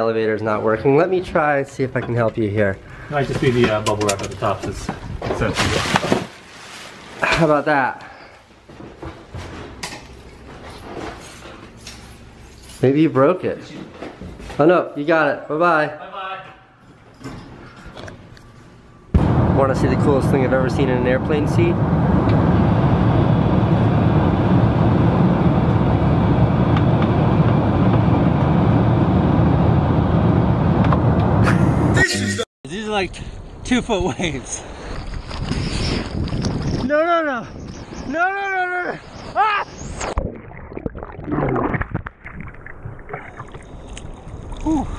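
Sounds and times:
wind rumble on microphone: 0:19.2 - 0:31.5, 0:33.9 - 0:38.2
man's voice: 0:31.5 - 0:33.1.

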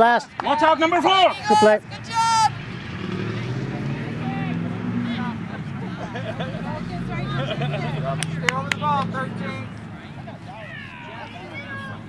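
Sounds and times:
faint voices: 0:00.0 - 0:12.0
person shouting: 0:01.0 - 0:02.6
motor engine humming: 0:01.4 - 0:12.0.

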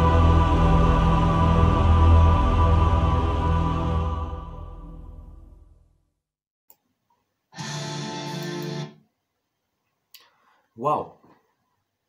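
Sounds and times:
guitar music: 0:07.6 - 0:09.0.

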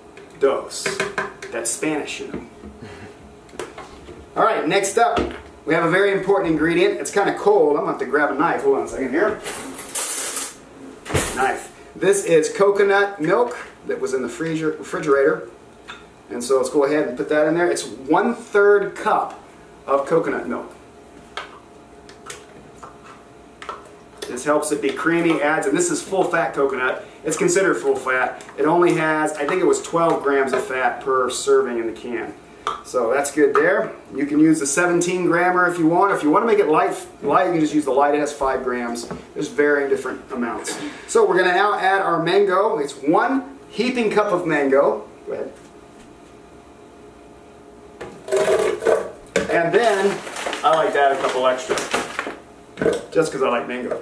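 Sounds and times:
frozen fruit clattering into blender: 0:48.2 - 0:52.4.

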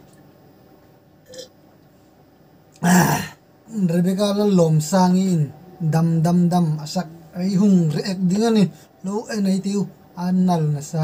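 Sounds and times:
man burping: 0:01.2 - 0:01.5, 0:02.8 - 0:03.4.

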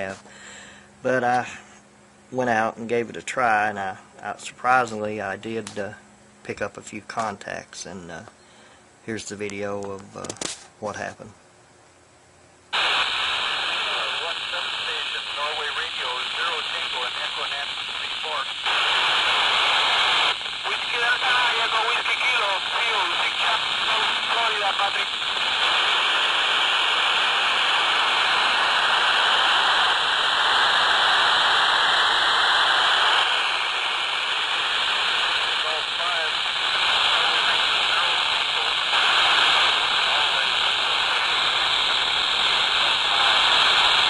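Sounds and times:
radio static hiss: 0:00.0 - 0:08.4, 0:12.7 - 0:44.0
faint broken radio voice: 0:12.8 - 0:28.8, 0:32.9 - 0:44.0.

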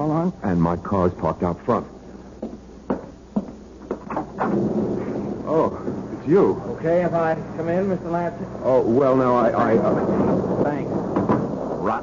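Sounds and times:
storm noise: 0:04.4 - 0:12.0.

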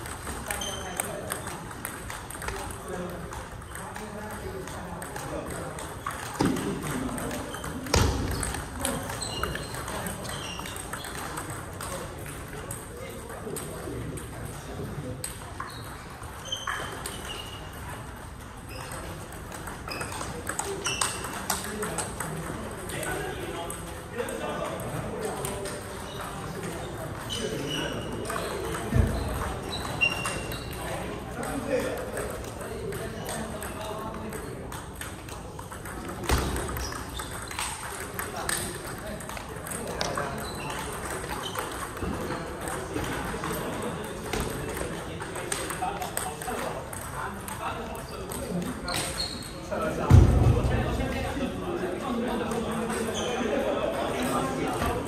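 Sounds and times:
table tennis balls clicking: 0:00.0 - 0:50.0, 0:52.1 - 0:55.0.

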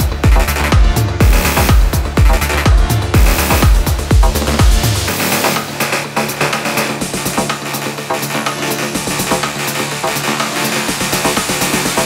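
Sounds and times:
sustained synth pads: 0:01.2 - 0:08.4.

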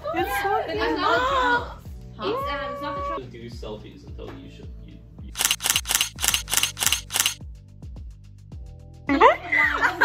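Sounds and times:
background music with kick drum: 0:00.0 - 0:05.3, 0:07.4 - 0:10.0
camera shutter clicks: 0:05.4 - 0:07.4.

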